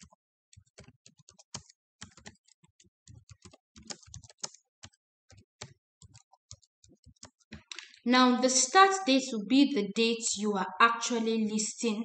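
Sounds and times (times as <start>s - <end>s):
keyboard typing: 0.0s - 8.0s.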